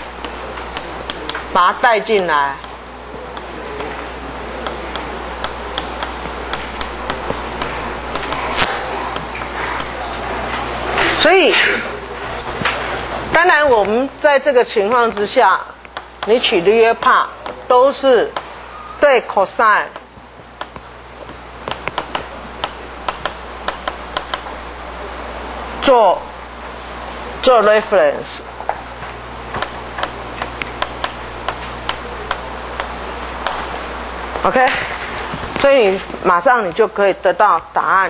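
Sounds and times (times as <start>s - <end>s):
low hum and hiss: 0.0s - 38.0s
light taps and clicks on board: 20.6s - 24.4s.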